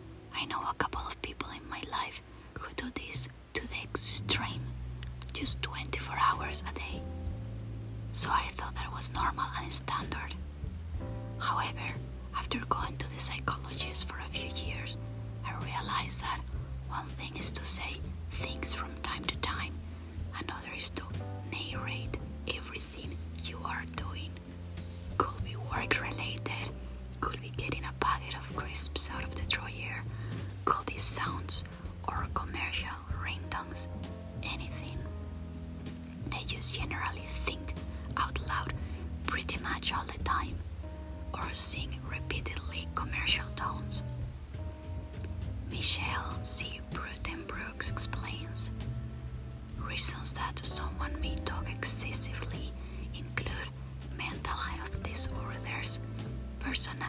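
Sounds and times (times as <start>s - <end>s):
soft background music: 0.0s - 57.0s.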